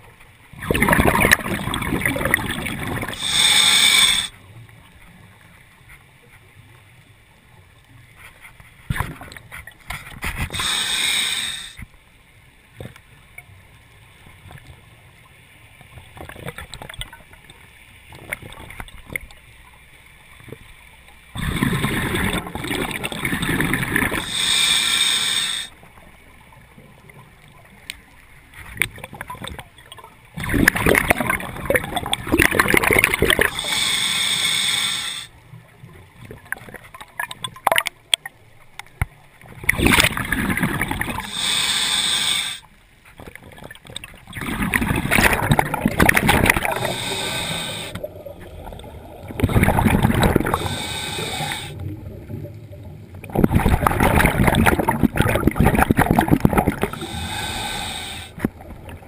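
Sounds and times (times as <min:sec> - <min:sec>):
exhaled bubbles rushing: 0:00.6 - 0:03.3, 0:21.4 - 0:24.3, 0:30.4 - 0:33.6, 0:39.6 - 0:41.3, 0:44.2 - 0:57.5
regulator hiss: 0:03.2 - 0:04.4, 0:10.5 - 0:11.8, 0:24.2 - 0:25.8, 0:33.5 - 0:35.3, 0:41.2 - 0:42.7, 0:46.7 - 0:48.1, 0:50.4 - 0:51.8, 0:56.9 - 0:58.4
faint clicks: 0:27.0 - 0:30.1.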